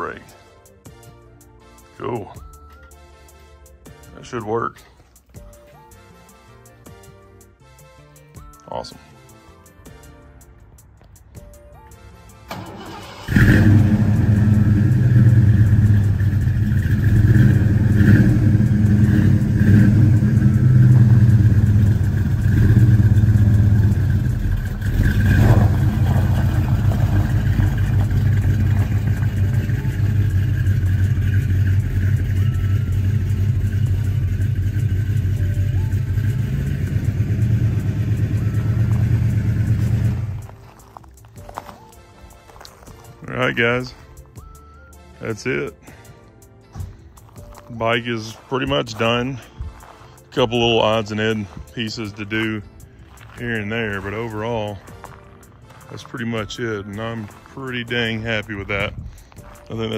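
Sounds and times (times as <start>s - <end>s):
truck engine starting and idling: 12.1s - 41.9s, 46.8s - 59.9s
engine revving: 12.5s - 40.6s.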